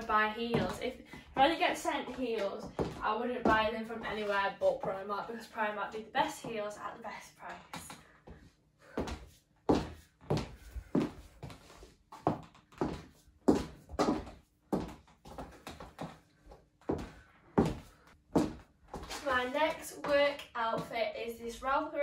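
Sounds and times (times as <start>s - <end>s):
heel footsteps on wooden floor: 0.0s - 5.0s, 8.3s - 16.2s, 16.8s - 20.9s.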